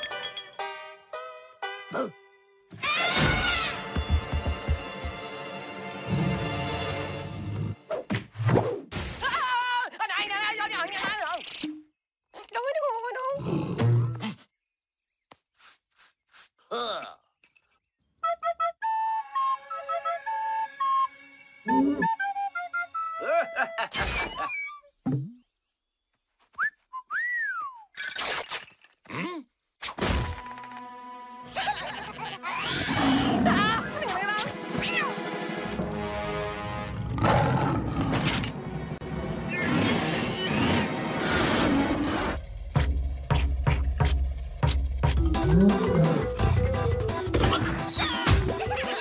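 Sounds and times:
cartoon music: 0:18.2 - 0:23.9, 0:45.1 - 0:49.0
cartoon vocal grunts: 0:29.1 - 0:29.5.

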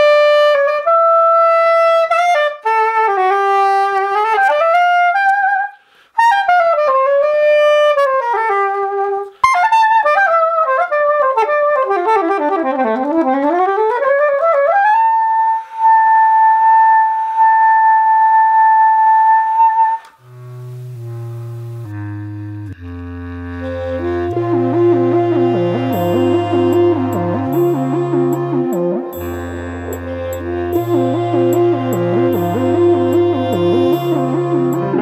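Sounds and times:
saxophone playing quick runs: 0:19.9 - 0:35.0
background music with bass line: 0:20.2 - 0:35.0.

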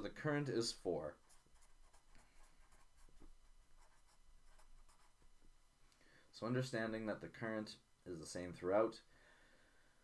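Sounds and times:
marker scratching on paper: 0:01.1 - 0:05.3.

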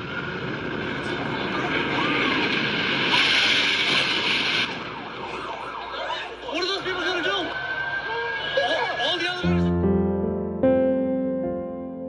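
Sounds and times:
jet airliner engine roar: 0:00.0 - 0:09.5.

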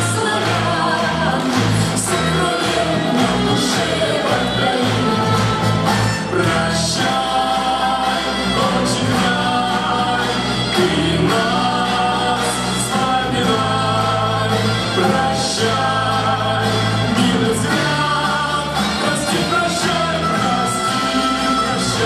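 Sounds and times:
choir singing: 0:00.0 - 0:22.0
instrumental accompaniment with bass: 0:00.0 - 0:22.0.

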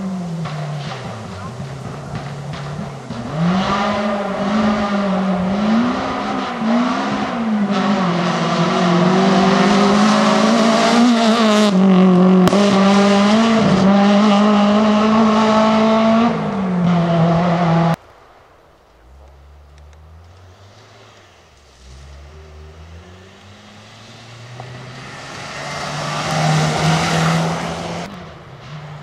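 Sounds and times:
rally car engine accelerating: 0:00.0 - 0:18.0, 0:19.0 - 0:29.0.

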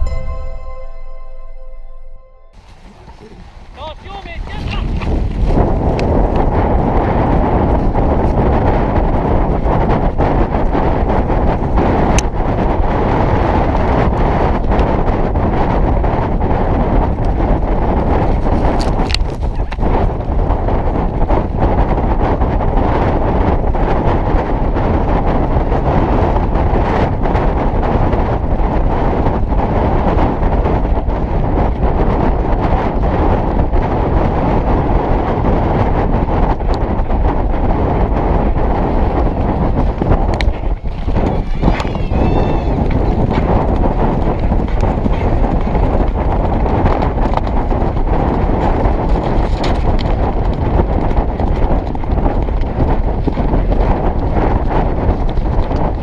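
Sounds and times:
wind buffeting microphone: 0:02.5 - 0:56.0
horse hoofbeats: 0:02.6 - 0:23.4, 0:30.5 - 0:56.0.

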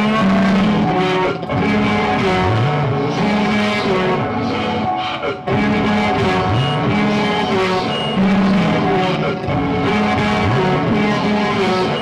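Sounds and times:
experimental noise music drone: 0:00.0 - 0:12.0.

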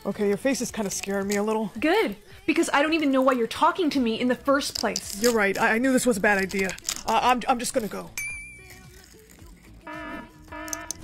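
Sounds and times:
buzzy fire alarm pulses: 0:09.9 - 0:11.0.

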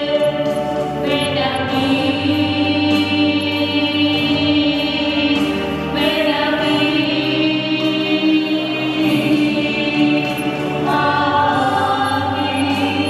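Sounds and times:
choir singing held chords: 0:00.0 - 0:13.0.

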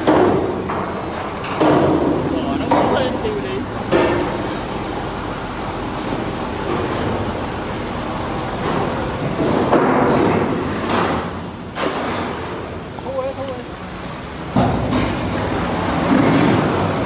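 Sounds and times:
steady background noise: 0:00.0 - 0:17.0.

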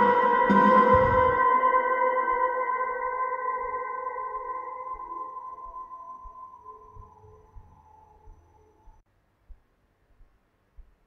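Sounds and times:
sustained electric guitar note: 0:00.0 - 0:01.7.

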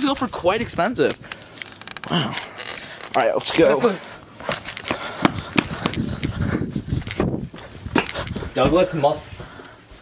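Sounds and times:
footsteps on asphalt: 0:02.6 - 0:10.0.

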